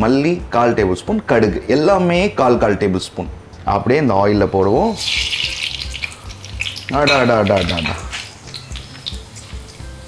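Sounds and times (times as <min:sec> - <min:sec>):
spices sizzling in hot oil: 0:04.7 - 0:10.0.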